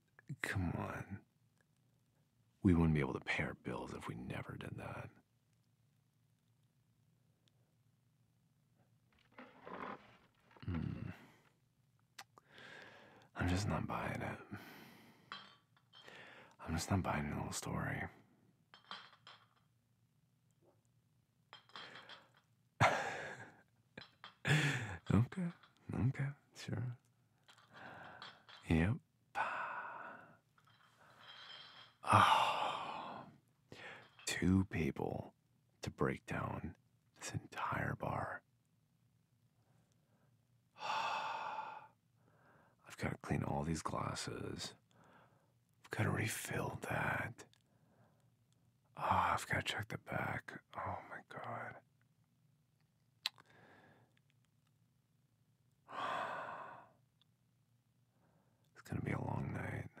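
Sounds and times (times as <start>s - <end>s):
person sighing: 10.5s - 11.4s, 24.5s - 25.6s, 29.4s - 30.4s, 32.0s - 34.0s, 40.8s - 41.9s, 55.9s - 56.9s
soft breath out: 12.4s - 13.3s, 14.5s - 16.6s, 27.6s - 28.5s, 55.9s - 57.0s.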